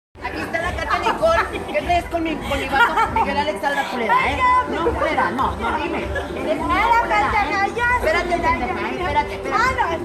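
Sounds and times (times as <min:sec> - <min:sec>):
people talking: 0:00.2 - 0:10.0.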